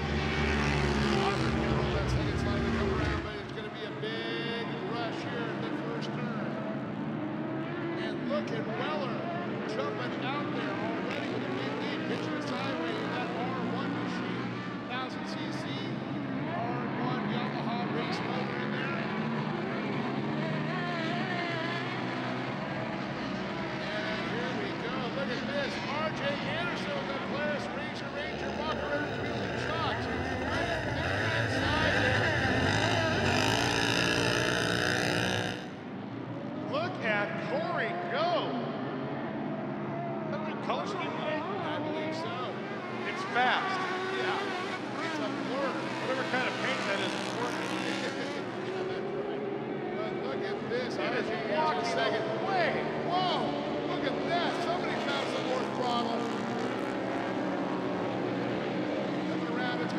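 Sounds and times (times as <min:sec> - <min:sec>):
racing engines revving: 0:00.0 - 0:59.9.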